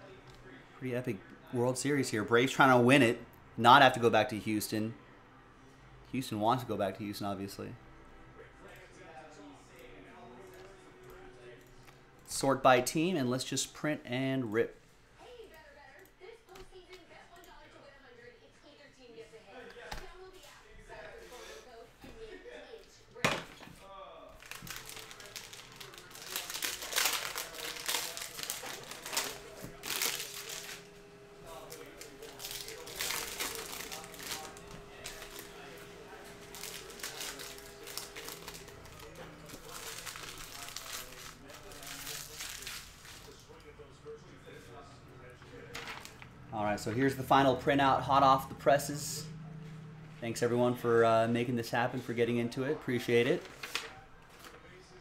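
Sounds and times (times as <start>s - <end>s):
plastic wrapper crinkling: 24.4s - 43.5s, 53.4s - 54.6s
faint steady hum: 24.4s - 52.6s.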